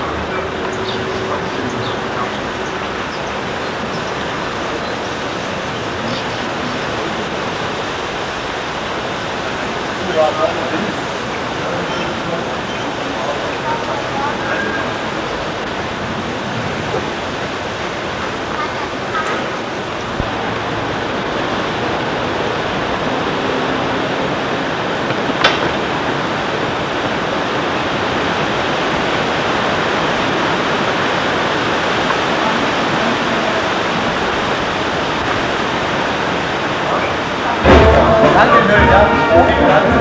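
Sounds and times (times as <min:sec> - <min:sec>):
steady rushing noise: 0:00.0 - 0:40.0.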